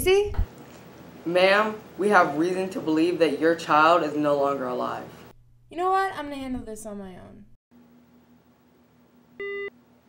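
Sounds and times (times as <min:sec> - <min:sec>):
phone electronic beep: 0:09.4 - 0:09.7.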